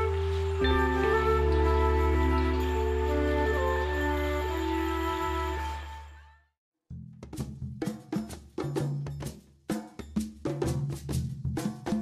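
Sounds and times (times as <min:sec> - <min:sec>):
low sustained bass notes: 0:00.0 - 0:05.6.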